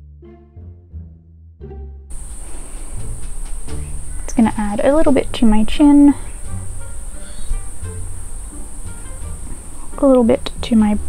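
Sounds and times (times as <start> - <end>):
background music: 0.0 - 11.0
high-pitched electronic hiss: 2.1 - 11.0.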